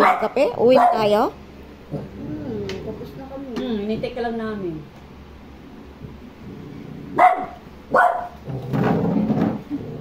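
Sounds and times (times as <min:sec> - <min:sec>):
dog barking: 0:00.0 - 0:01.1, 0:07.2 - 0:08.4.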